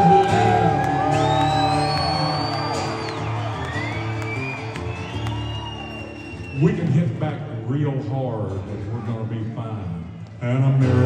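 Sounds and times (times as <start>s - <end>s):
audience whistling and whooping: 0.0s - 7.0s.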